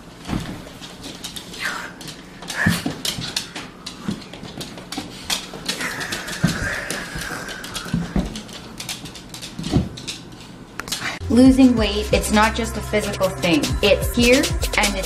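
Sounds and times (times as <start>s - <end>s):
dog scuffling: 0.2s - 10.5s
dog claws clicking on wooden floor: 0.7s - 11.1s.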